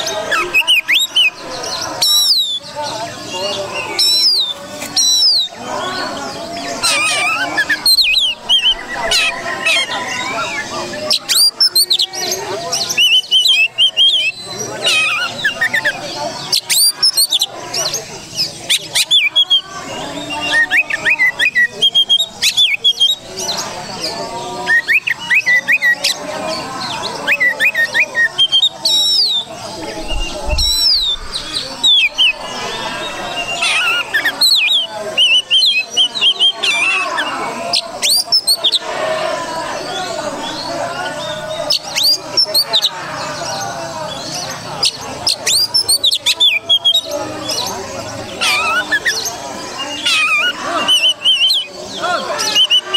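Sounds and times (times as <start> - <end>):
songbird singing: 0.0 - 52.9.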